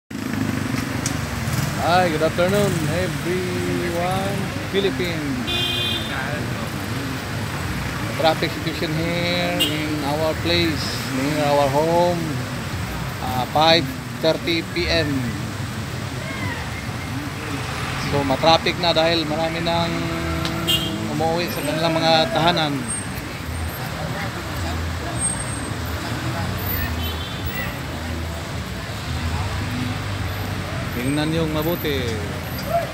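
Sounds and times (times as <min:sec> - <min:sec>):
traffic engines humming: 0:00.1 - 0:32.9.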